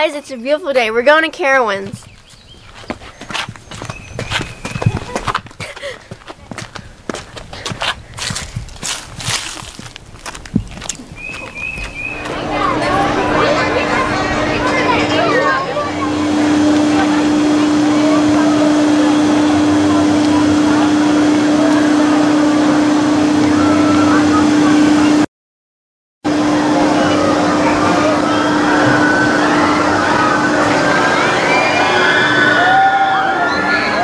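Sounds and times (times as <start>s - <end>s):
noisy rush: 0.0s - 25.3s, 26.3s - 34.0s
ride machinery humming: 0.0s - 25.3s, 26.3s - 34.0s
footsteps crunching: 1.6s - 13.3s
hand-held camera rustling: 1.9s - 12.2s.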